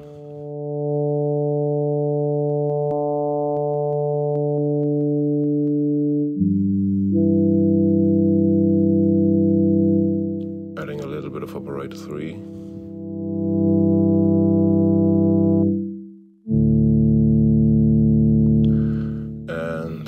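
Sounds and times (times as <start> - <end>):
synthesizer pad chords: 0.0 - 20.0.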